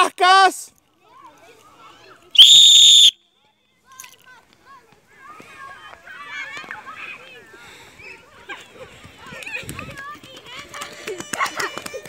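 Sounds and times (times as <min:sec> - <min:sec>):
sports whistle blast: 0:02.4 - 0:03.2.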